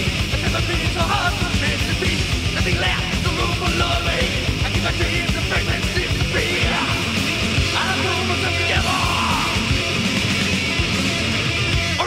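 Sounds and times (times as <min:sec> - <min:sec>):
distorted electric guitars: 0:00.0 - 0:12.0
fast drums: 0:00.0 - 0:12.0
person yelling vocals: 0:07.7 - 0:09.7.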